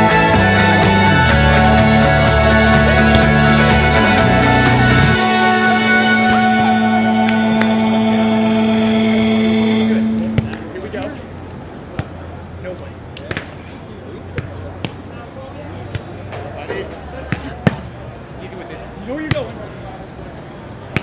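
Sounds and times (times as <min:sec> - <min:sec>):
music chord: 0:00.0 - 0:11.2
low steady hum: 0:04.8 - 0:11.7.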